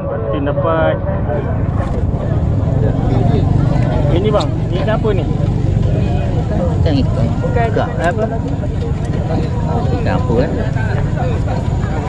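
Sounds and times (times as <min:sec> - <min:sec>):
people talking: 0:00.0 - 0:12.0
steady low rumble: 0:00.0 - 0:12.0.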